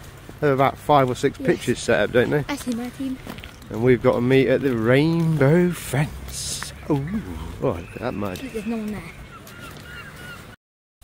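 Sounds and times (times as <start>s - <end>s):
low outdoor rumble: 0.0s - 10.1s
distant bird calls: 1.4s - 10.6s.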